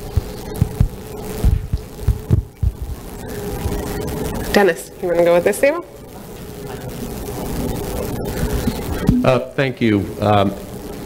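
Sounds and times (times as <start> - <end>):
sound system hum: 0.0 - 9.9.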